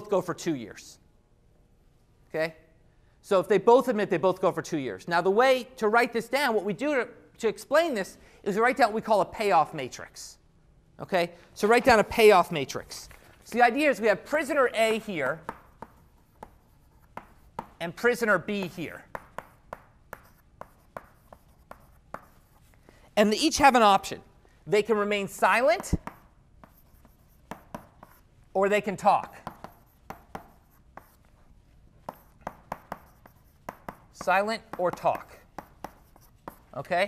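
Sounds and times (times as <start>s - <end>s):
writing taps on a board: 15.4s - 17.8s, 18.6s - 22.4s, 25.8s - 28.2s, 29.4s - 31.1s, 32.1s - 36.6s.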